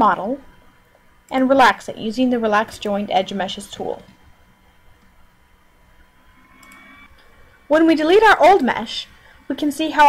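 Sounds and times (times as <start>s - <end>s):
background hiss and hum: 0.0s - 10.0s
faint steady tones: 0.0s - 10.0s.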